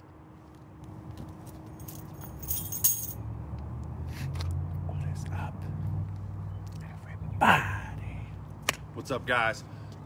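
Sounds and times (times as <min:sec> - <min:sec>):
light jingling rattle of clicks: 0:01.8 - 0:03.2.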